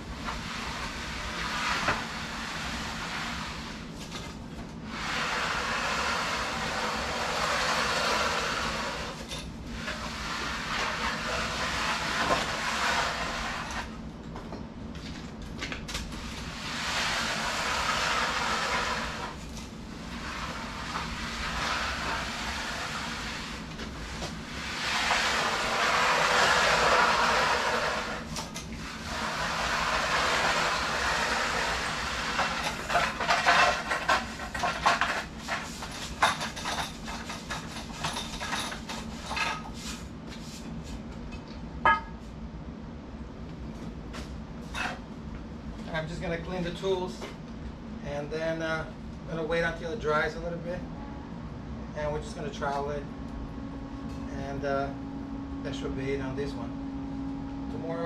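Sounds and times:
float scraping wet concrete: 0:00.2 - 0:04.3, 0:04.9 - 0:14.0, 0:16.2 - 0:37.8.

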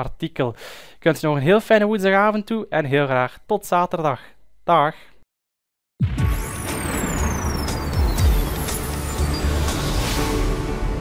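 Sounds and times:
dark-toned music: 0:06.0 - 0:11.0
low falling boom: 0:06.0 - 0:11.0
sharp hits: 0:06.0 - 0:11.0
high tone gliding downward: 0:06.3 - 0:10.7.

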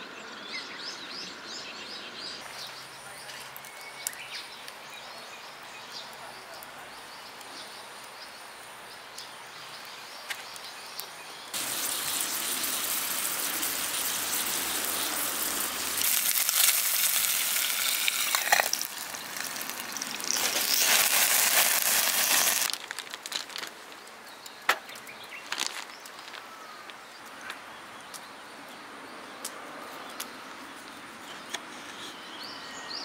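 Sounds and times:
patty sizzling in a pan: 0:11.5 - 0:23.2.

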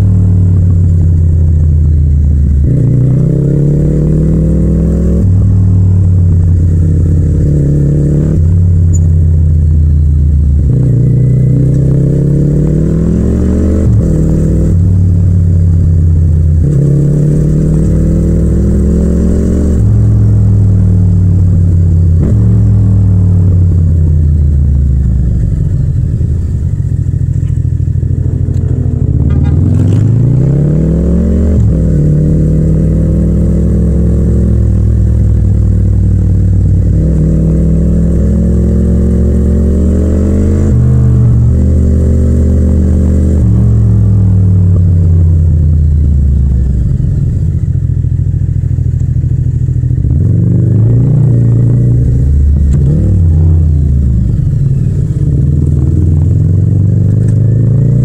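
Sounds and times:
motorcycle engine revving through gears: 0:00.0 - 0:58.0.

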